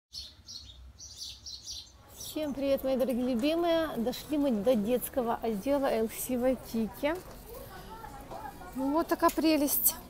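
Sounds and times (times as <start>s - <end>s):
birds chirping: 0.1s - 4.4s.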